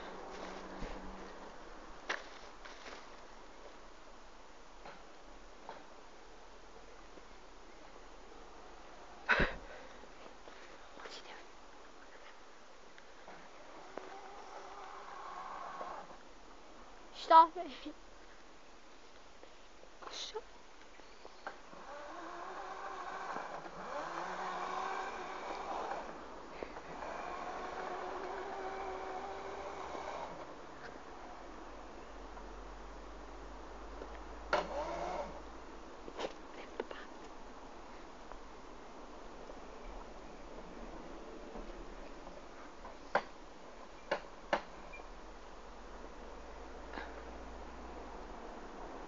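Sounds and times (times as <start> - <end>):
electric motor whining: 13.7 - 16.2, 21.8 - 26.2, 26.9 - 30.4.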